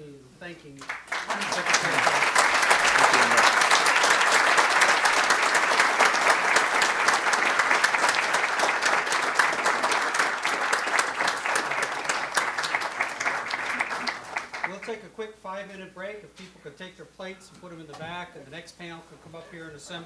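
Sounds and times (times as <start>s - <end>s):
audience applauding: 0.8s - 15.0s.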